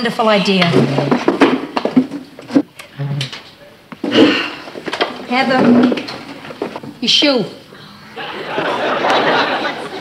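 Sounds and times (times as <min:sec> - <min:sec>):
knocks and clatter at table: 0:00.6 - 0:02.7, 0:04.0 - 0:06.9.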